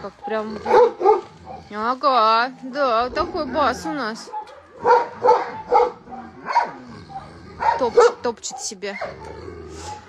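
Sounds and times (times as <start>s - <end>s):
dog barking deeply: 0.0s - 1.8s, 3.2s - 10.0s.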